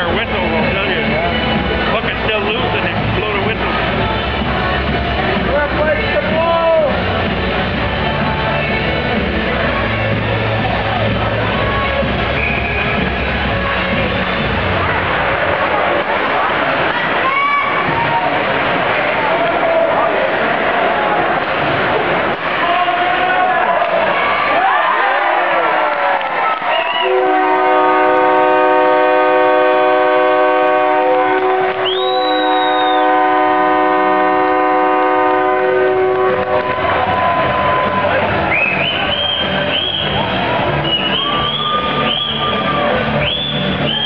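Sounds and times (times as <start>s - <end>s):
crowd cheering and yelling: 0.0s - 44.0s
shrill whistle: 12.3s - 13.1s, 26.7s - 27.2s, 31.8s - 33.2s, 38.5s - 44.0s
arena goal horn blast: 27.0s - 31.8s, 32.4s - 36.8s.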